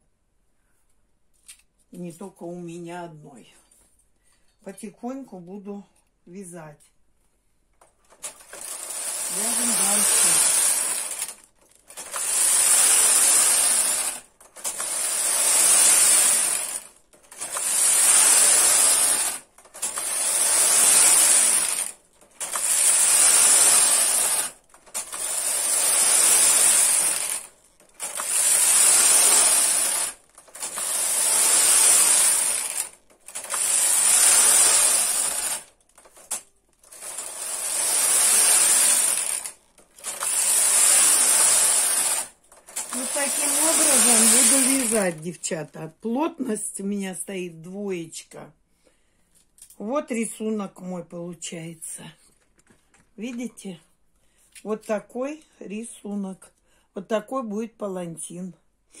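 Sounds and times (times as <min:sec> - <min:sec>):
knitting machine carriage rattling: 0:07.8 - 0:45.6.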